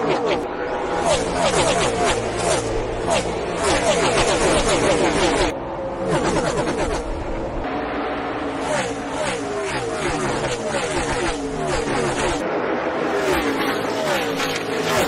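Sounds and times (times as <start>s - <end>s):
race car engines passing: 0.0s - 15.0s.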